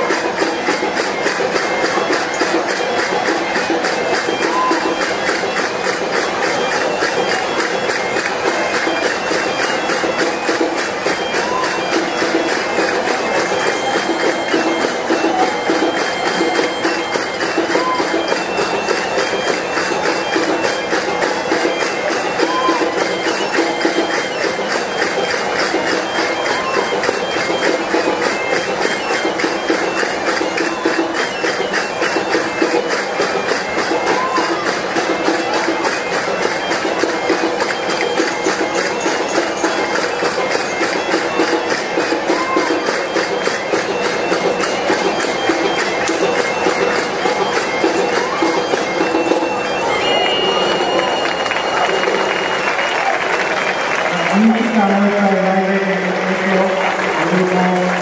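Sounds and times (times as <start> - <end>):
fast even drumbeat: 0.0 - 52.6
bagpipes playing over drone: 0.0 - 52.7.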